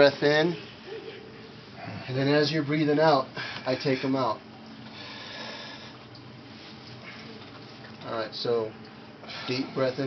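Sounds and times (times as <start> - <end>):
man breathing in deeply: 4.9 - 6.0.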